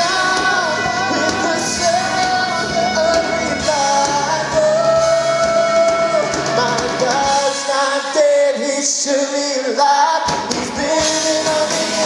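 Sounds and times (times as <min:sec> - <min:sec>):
person singing: 0:00.0 - 0:12.0
rock band playing: 0:00.0 - 0:12.0.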